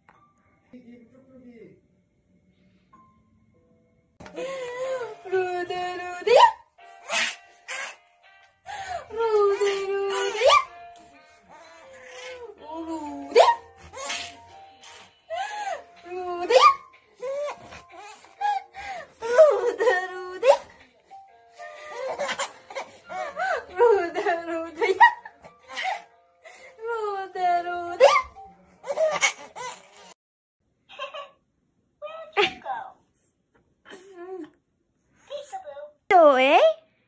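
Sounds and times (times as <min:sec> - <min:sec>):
baby laughing: 0:06.3 - 0:08.0, 0:09.4 - 0:10.8, 0:11.5 - 0:20.8, 0:21.6 - 0:26.0, 0:27.9 - 0:30.1, 0:30.9 - 0:31.4
baby cooing: 0:11.5 - 0:15.1.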